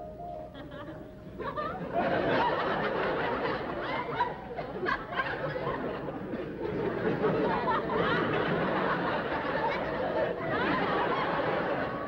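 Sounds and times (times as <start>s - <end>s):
audience laughing: 0.6s - 12.0s.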